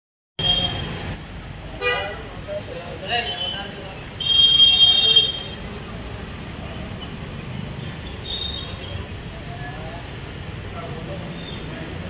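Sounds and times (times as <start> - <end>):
vehicle horns honking: 0.4 - 1.0, 1.8 - 2.3, 3.2 - 5.7, 8.1 - 8.9
low traffic rumble: 0.4 - 12.0.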